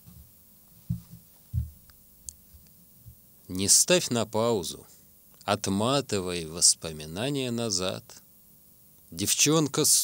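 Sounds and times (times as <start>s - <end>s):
soft low thumps: 0.0s - 1.9s.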